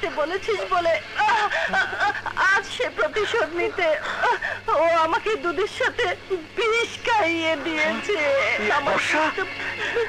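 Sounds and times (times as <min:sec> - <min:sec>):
woman hysterical crying or laughing: 0:01.1 - 0:04.9, 0:09.1 - 0:10.0.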